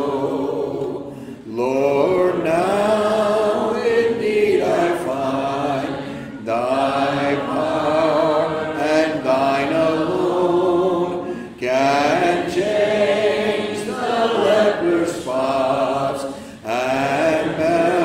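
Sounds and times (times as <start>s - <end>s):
man singing a cappella hymn: 0.0s - 18.0s.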